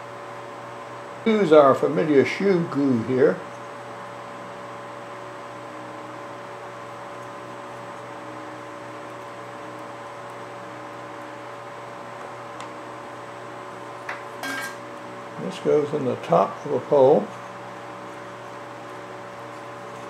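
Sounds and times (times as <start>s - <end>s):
fan humming: 0.0s - 20.0s.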